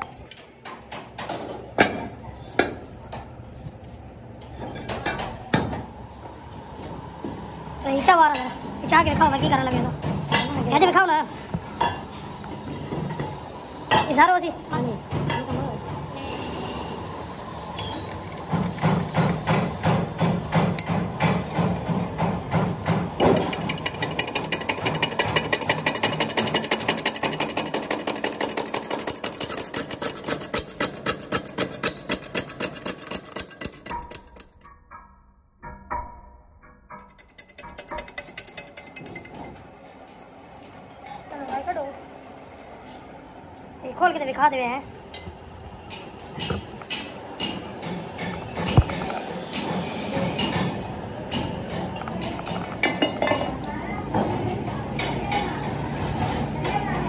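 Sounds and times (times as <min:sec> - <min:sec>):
rhythmic knocking of tool on metal: 0:18.5 - 0:35.0, 0:35.6 - 0:39.6.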